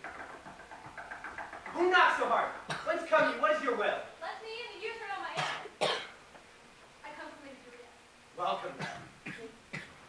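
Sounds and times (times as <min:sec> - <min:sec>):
person coughing: 0:05.4 - 0:06.2, 0:08.8 - 0:10.0.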